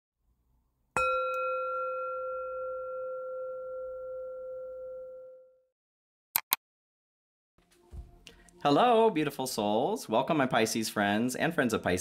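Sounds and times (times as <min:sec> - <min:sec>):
singing bowl ringing: 0:01.0 - 0:05.7.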